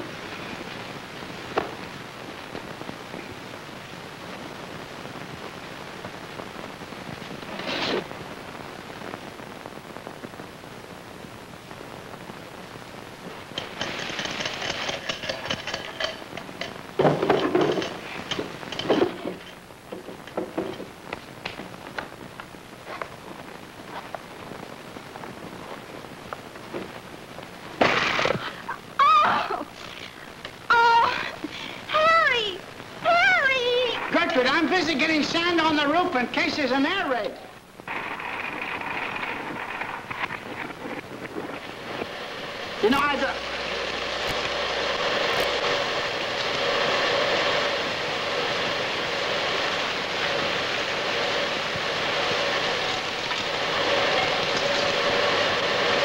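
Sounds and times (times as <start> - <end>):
old film soundtrack hiss: 0.0 - 56.0.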